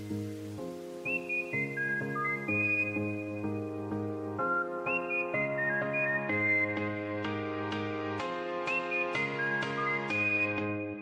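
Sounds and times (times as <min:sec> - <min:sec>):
high whistle-like melody: 0:01.0 - 0:07.3, 0:08.6 - 0:11.0.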